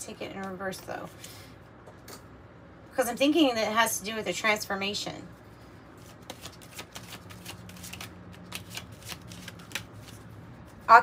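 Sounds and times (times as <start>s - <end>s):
cards being shuffled: 6.0s - 10.8s.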